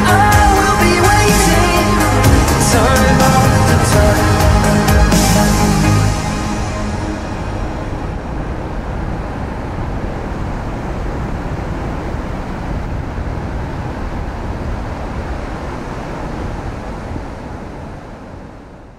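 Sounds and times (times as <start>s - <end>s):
ocean surf rushing: 0.0s - 18.9s
wind rumble on microphone: 6.5s - 18.9s.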